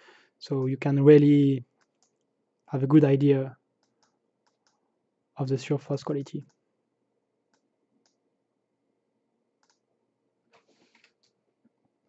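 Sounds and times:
computer mouse clicks: 0:01.8 - 0:02.3, 0:03.8 - 0:04.8, 0:09.6 - 0:09.8, 0:10.5 - 0:11.4.

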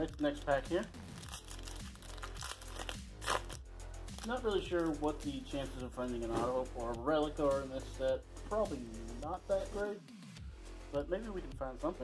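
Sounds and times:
quiet background music: 0:00.0 - 0:12.0
wrapper tearing and crinkling: 0:00.2 - 0:05.1.

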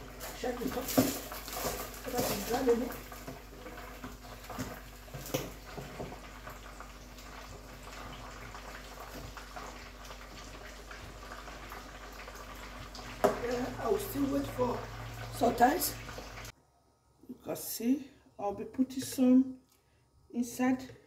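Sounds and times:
soup bubbling in a pot: 0:00.0 - 0:16.6.

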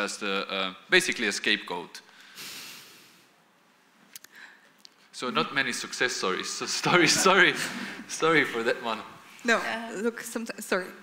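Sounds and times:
man breathing out through nose: 0:02.2 - 0:03.3.

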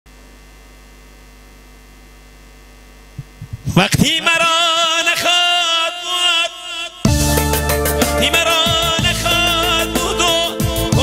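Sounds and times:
electrical mains hum: 0:00.1 - 0:04.4.

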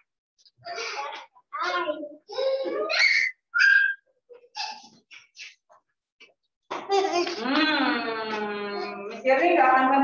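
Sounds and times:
child's high-pitched voice: 0:00.6 - 0:05.0, 0:06.8 - 0:07.5.

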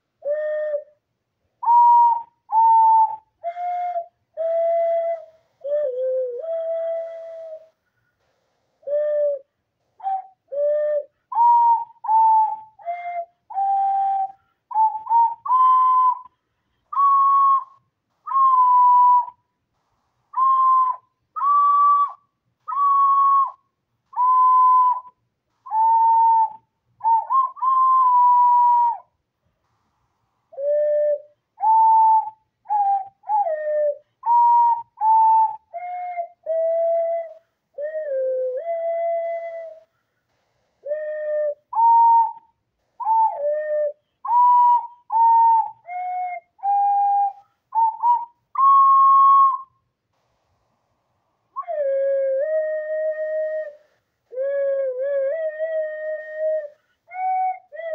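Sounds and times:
person whistling a melody: 0:00.2 - 0:01.0, 0:01.6 - 0:19.6, 0:20.3 - 0:29.2, 0:30.5 - 0:50.0, 0:51.5 - 0:57.9.

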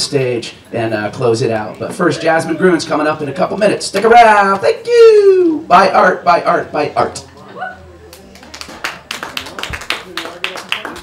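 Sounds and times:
audience clapping: 0:08.1 - 0:11.0.

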